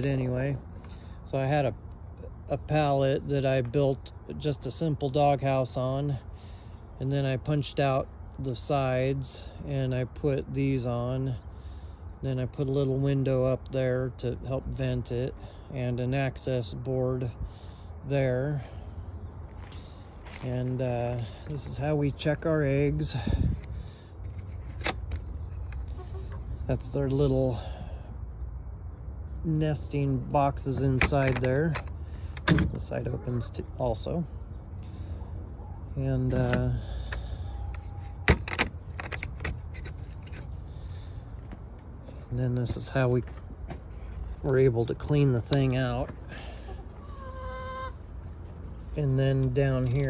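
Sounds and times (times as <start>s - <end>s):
metal bolt latch being worked: 30.9s - 32.8s, 38.2s - 39.9s
hen calling: 46.4s - 48.1s.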